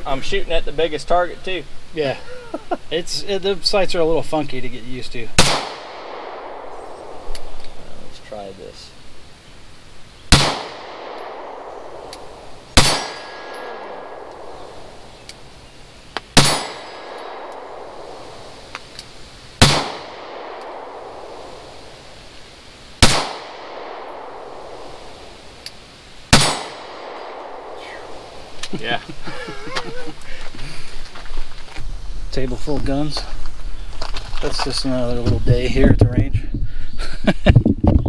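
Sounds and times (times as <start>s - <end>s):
pistol shots: 5.4s - 7.5s, 10.3s - 15.0s, 16.3s - 18.3s, 19.6s - 21.6s, 23.0s - 25.0s, 26.3s - 28.3s.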